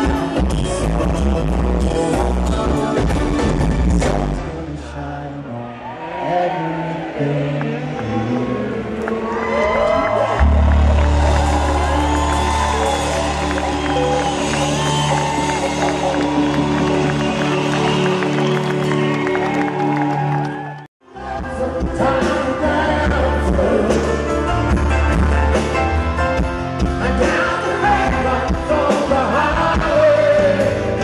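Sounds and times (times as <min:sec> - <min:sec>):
live band playing: 0:00.0 - 0:04.6, 0:10.1 - 0:31.0
man singing: 0:00.0 - 0:09.9, 0:21.0 - 0:25.0, 0:26.8 - 0:31.0
heavy bass line: 0:09.8 - 0:18.5.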